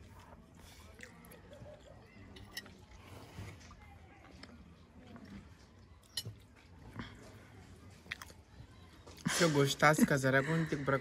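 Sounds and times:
faint chewing: 0.0 - 9.3.

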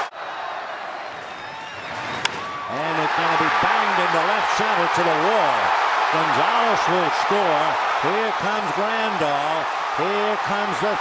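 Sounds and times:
ballpark crowd noise: 0.0 - 11.0
bat cracking a baseball: 2.2 - 2.5.

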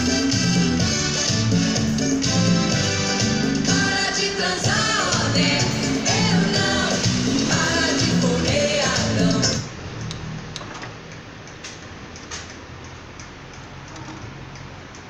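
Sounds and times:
song with singing: 2.8 - 9.8.

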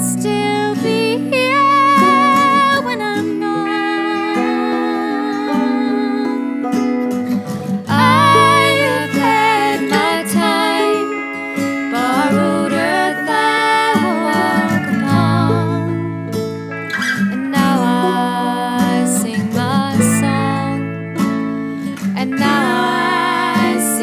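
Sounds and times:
acoustic guitar: 0.0 - 24.0
banjo: 0.0 - 24.0.

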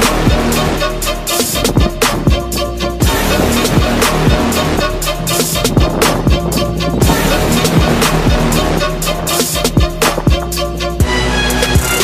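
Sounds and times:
background music with deep bass beat: 0.0 - 12.0.

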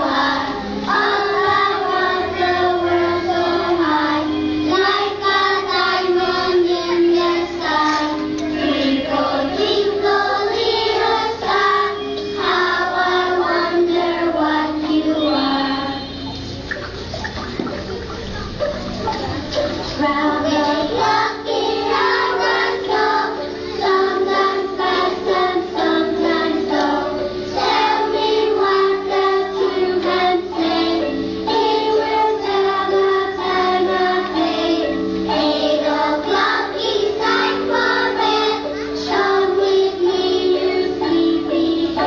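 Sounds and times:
children singing together: 0.0 - 42.0
instrumental accompaniment: 0.0 - 42.0.

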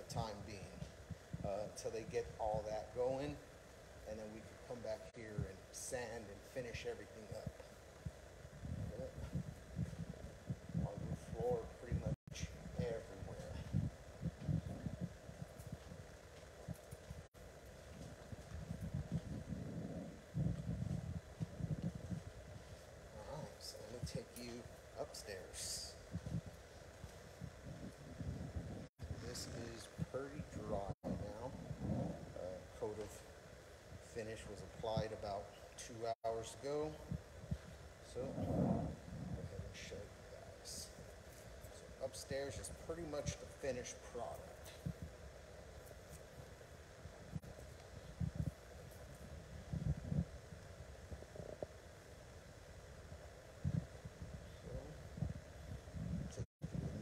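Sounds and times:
soft steady hiss: 0.0 - 57.0.

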